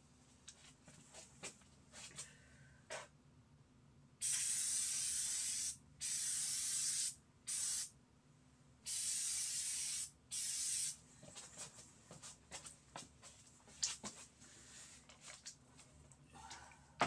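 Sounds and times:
aerosol can spraying: 0:04.2 - 0:07.9, 0:08.9 - 0:11.0.

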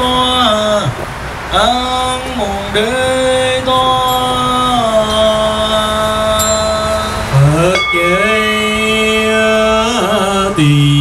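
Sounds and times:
monks chanting: 0:01.6 - 0:11.0
high ringing tone: 0:03.8 - 0:10.8.

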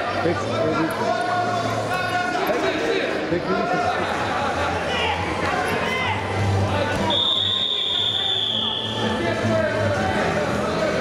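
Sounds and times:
background chatter in a hall: 0:00.0 - 0:11.0
shrill whistle blast: 0:07.1 - 0:09.0.

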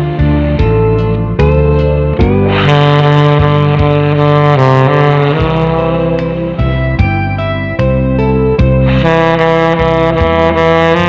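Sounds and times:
backing track with steady beat: 0:00.0 - 0:11.0
tenor saxophone long note: 0:00.1 - 0:11.0.

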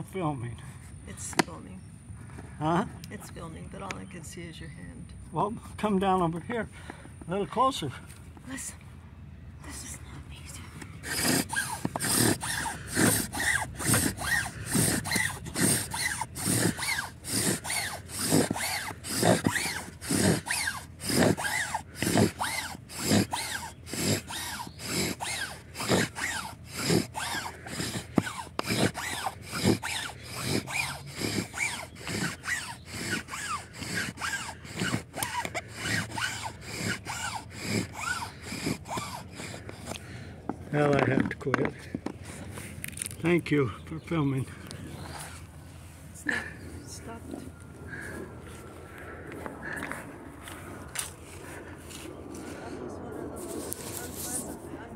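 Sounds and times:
bow drill squeaking grind: 0:11.0 - 0:45.5.

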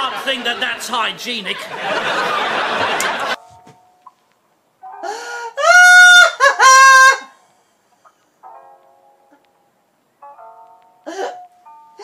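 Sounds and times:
rooster crowing: 0:05.6 - 0:07.4.

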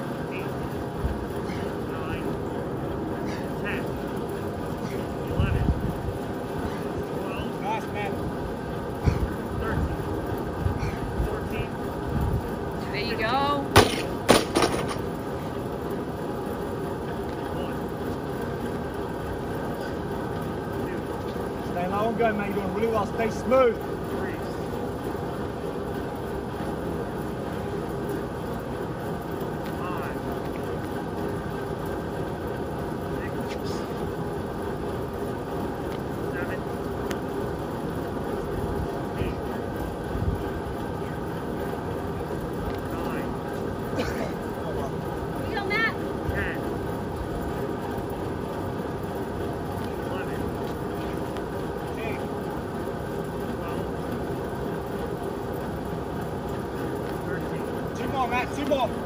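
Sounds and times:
drum fan whirring: 0:00.0 - 0:59.0.

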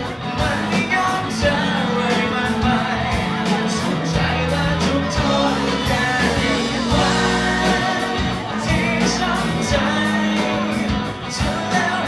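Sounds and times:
guitar and bass chords: 0:00.0 - 0:12.0
male singing into microphone: 0:00.0 - 0:12.0.

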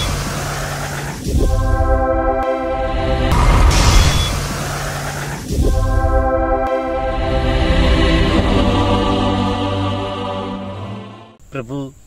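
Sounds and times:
held musical tone: 0:00.0 - 0:11.4
low rumble: 0:02.8 - 0:06.5.

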